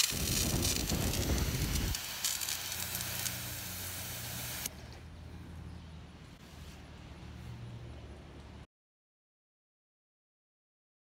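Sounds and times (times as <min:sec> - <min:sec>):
fire extinguisher hissing: 0:00.0 - 0:04.7.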